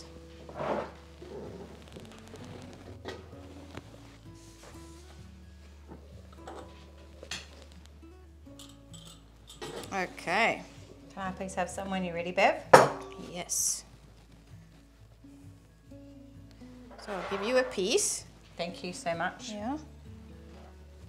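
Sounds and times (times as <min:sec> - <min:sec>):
soft background music: 0:00.0 - 0:21.0.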